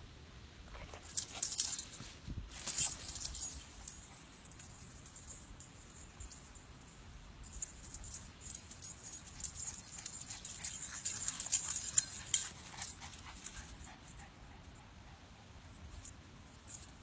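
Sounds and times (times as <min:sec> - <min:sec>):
dog tags jingling: 0:00.9 - 0:14.3.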